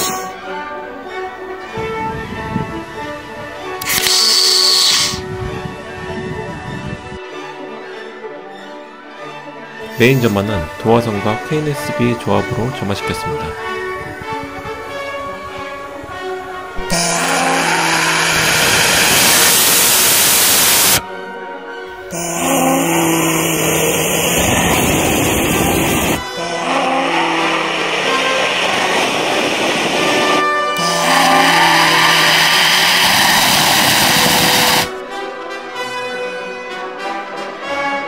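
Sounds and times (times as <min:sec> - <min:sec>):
background music: 0:00.0 - 0:38.0
rocket motor roaring: 0:03.8 - 0:05.2, 0:16.8 - 0:21.0, 0:22.1 - 0:35.0.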